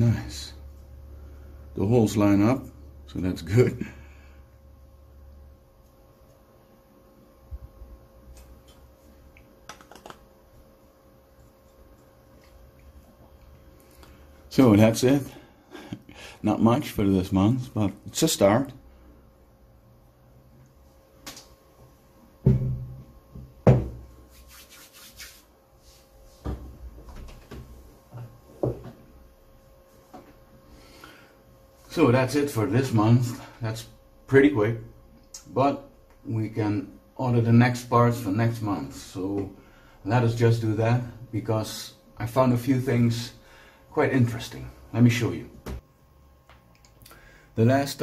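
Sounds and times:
faint steady hum: 0.0s - 48.0s.

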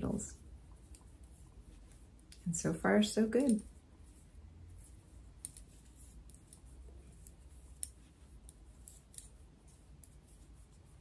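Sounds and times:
knitting needles clicking: 0.7s - 2.5s, 3.2s - 4.2s, 4.8s - 11.0s.

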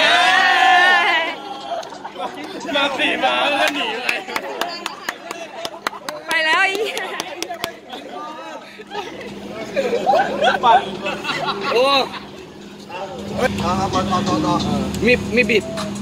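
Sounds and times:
men talking and calling out: 0.0s - 16.0s
steady low hum: 0.0s - 16.0s.

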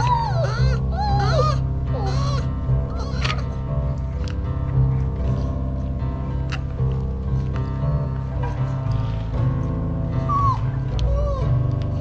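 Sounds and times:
puppy whining: 0.0s - 3.7s, 10.2s - 12.0s
background music: 0.0s - 12.0s.

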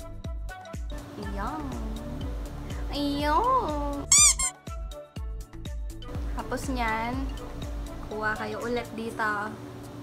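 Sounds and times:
background music: 0.0s - 9.5s
high-pitched squeak: 4.1s - 4.6s.

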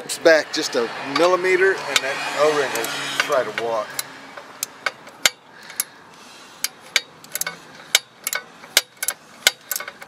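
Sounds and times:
hand tools clicking and tapping: 2.7s - 10.0s.

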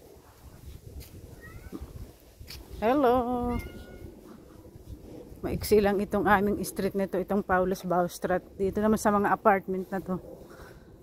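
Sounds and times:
faint street background: 0.0s - 11.0s
woman calling hello: 2.8s - 4.0s.

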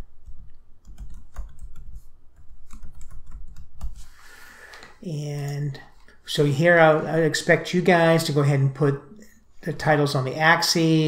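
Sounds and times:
computer keyboard typing: 0.2s - 4.0s.

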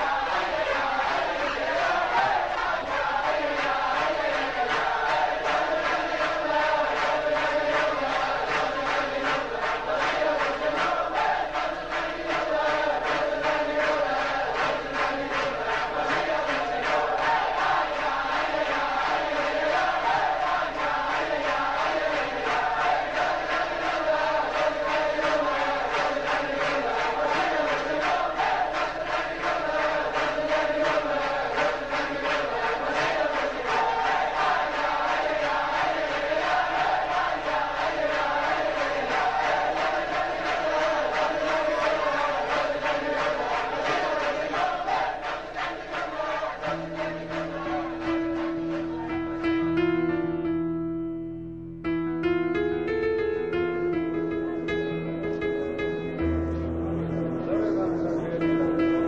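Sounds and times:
hand claps: 0.0s - 49.2s
crowd singing in unison: 0.0s - 50.3s, 56.1s - 59.0s.

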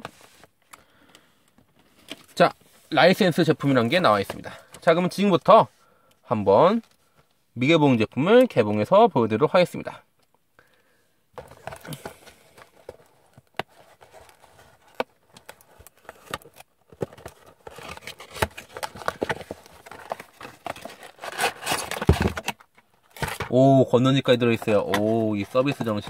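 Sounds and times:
cardboard box being opened: 11.4s - 23.5s
plastic packaging crinkling: 11.5s - 23.6s.

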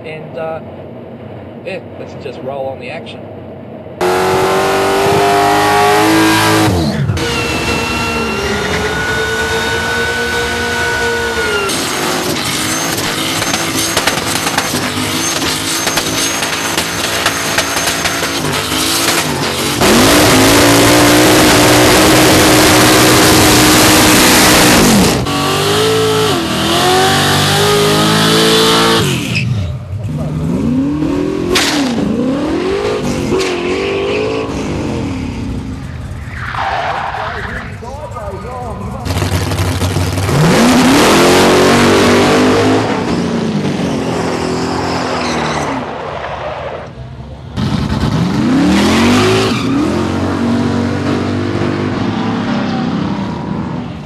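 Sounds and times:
car engines revving hard: 4.0s - 54.0s.

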